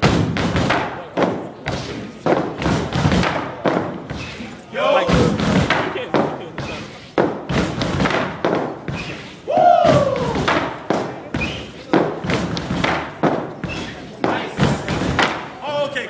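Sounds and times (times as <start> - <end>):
rhythmic stomps and cane strikes: 0.0 - 15.9
loud shouted call: 4.7 - 5.6, 9.5 - 10.6.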